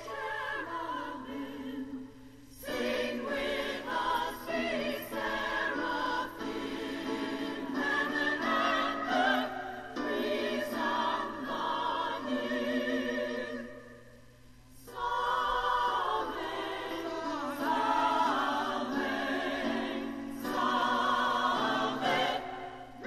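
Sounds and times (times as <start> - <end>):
women's choir singing a hymn: 0.0 - 23.0.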